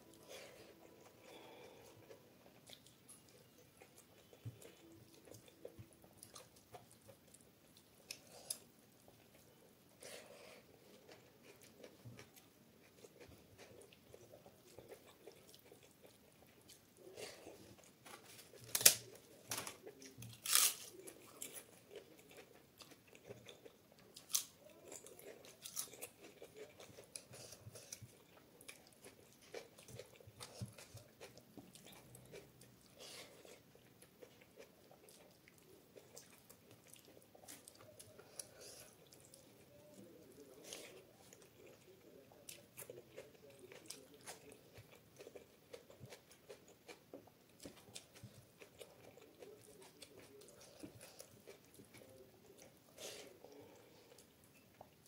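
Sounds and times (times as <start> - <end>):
chewing: 0.0 - 55.0
crisp crunches: 20.4 - 21.0
crisp snack crunching: 20.4 - 21.6.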